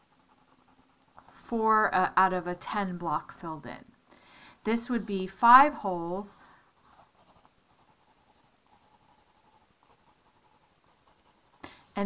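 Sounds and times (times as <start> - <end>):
pencil drawing on paper: 0.0 - 2.6, 5.9 - 12.0.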